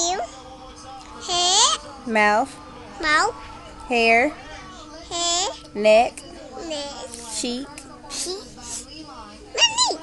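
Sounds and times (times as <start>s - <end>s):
soft breathy speech: 6.7s - 9.5s.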